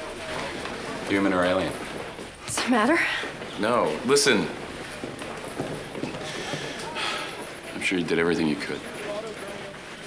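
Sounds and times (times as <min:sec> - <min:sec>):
faint murmuring voices: 0:00.0 - 0:10.0
footsteps: 0:00.0 - 0:10.0.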